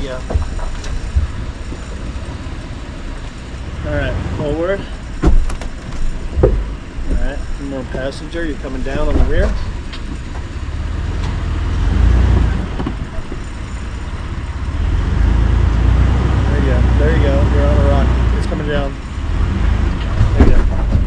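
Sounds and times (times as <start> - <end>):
engine rumbling at low speed: 0.0 - 21.0
sharp knocks: 5.2 - 7.4.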